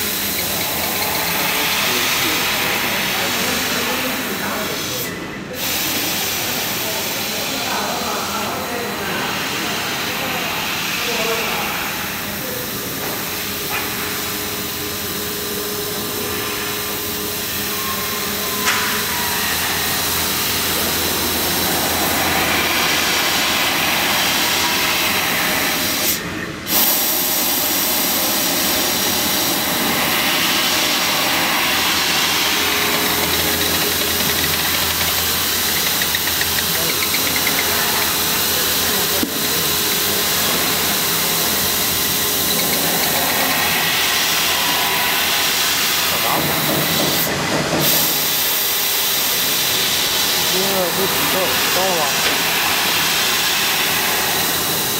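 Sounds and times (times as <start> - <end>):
machine noise: 0.0 - 5.0, 5.6 - 54.9
laser cutter hissing: 0.0 - 54.9.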